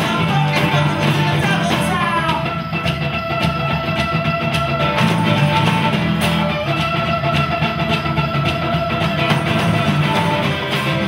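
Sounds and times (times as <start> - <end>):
acoustic guitar strummed: 0.0 - 11.0
drums: 0.0 - 11.0.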